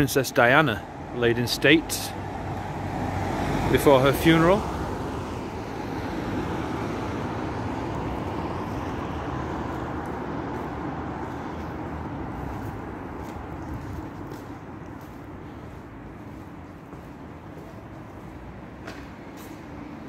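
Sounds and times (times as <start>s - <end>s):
road traffic noise: 0.0s - 20.0s.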